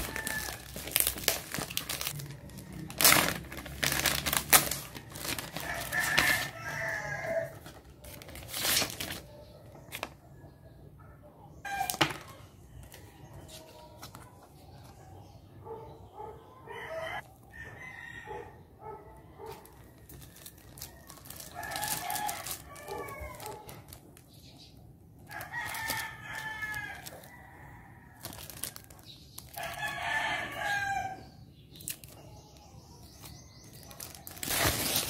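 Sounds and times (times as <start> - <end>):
rooster crowing: 0.0 - 0.7, 5.3 - 7.7, 16.6 - 18.6, 29.6 - 31.2.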